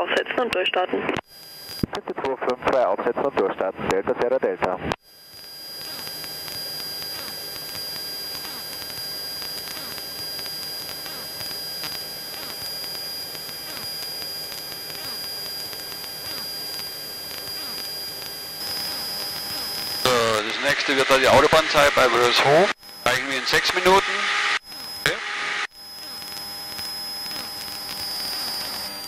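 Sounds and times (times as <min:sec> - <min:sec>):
thin high whine: 0:05.1 - 0:29.0.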